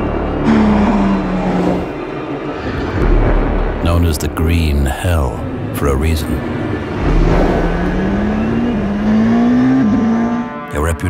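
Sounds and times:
race car passing by: 0.0 - 3.0, 5.5 - 10.7.

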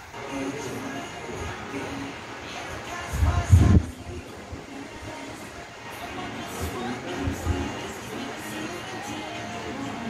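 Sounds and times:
wind buffeting microphone: 3.1 - 4.7.

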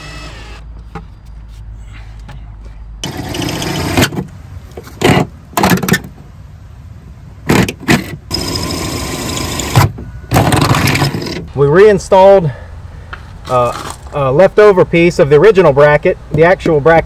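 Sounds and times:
cordless drill motor bursts: 0.0 - 0.6, 3.0 - 4.0, 8.3 - 9.8.

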